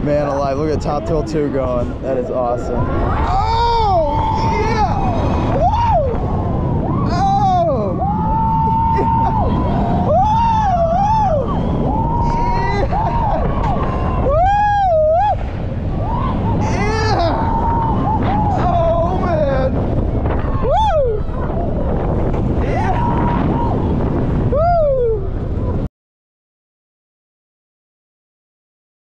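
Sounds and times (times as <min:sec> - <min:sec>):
roller coaster train on track: 0:00.0 - 0:25.9
wind on microphone: 0:00.0 - 0:25.9
riders screaming: 0:02.8 - 0:25.4.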